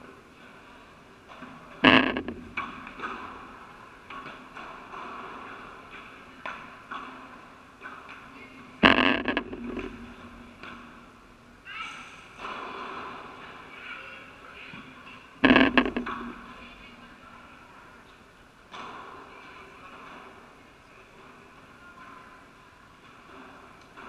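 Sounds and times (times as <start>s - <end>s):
ball bouncing off court and glass: 15.4s - 16.6s.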